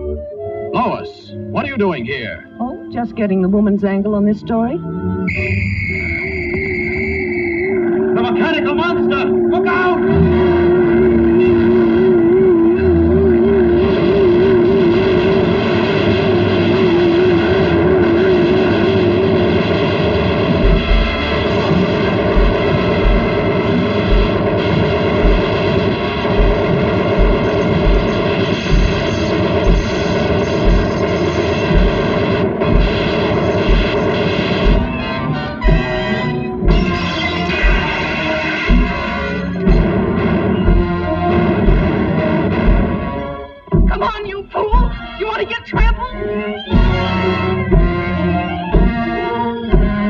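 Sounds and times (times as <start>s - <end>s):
orchestral cartoon music: 0.0s - 6.3s, 7.8s - 19.6s, 32.8s - 50.0s
heavy robot footsteps: 18.7s - 45.2s, 46.7s - 50.0s.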